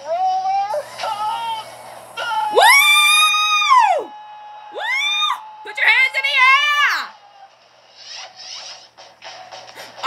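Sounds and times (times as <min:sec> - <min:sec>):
tv show music and sound effects: 0:00.0 - 0:10.0.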